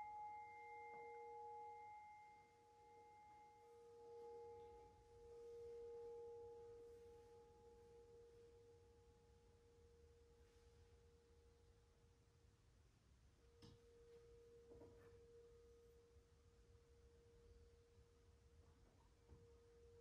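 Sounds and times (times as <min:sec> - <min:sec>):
singing bowl ringing: 0:00.0 - 0:11.6.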